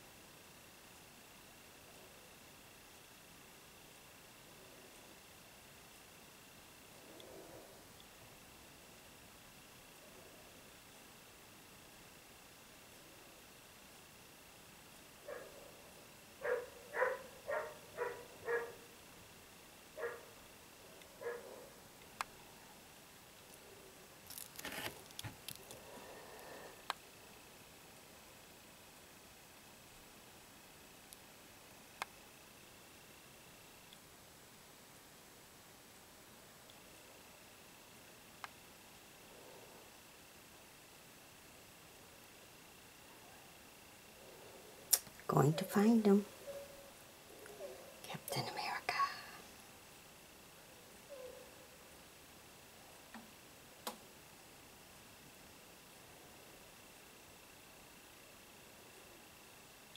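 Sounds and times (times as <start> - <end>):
faint high-pitched whine: 0.0 - 59.9
dog barking: 15.2 - 15.8, 16.4 - 18.9, 20.0 - 20.4, 21.2 - 21.8, 46.4 - 46.9, 51.1 - 51.6.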